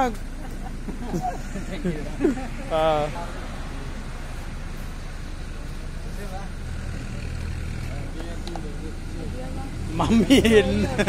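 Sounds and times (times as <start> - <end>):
engine idling hum: 0.0 - 11.0.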